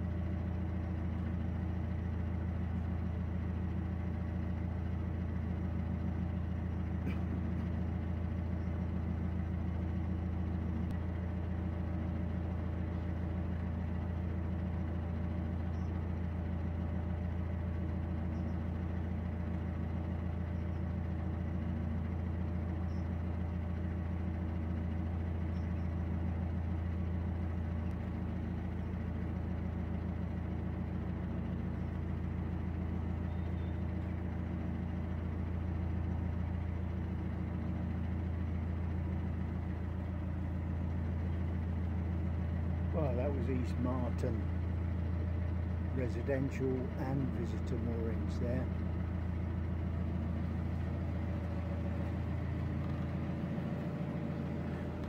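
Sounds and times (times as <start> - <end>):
boat engine droning: 0.0 - 55.0.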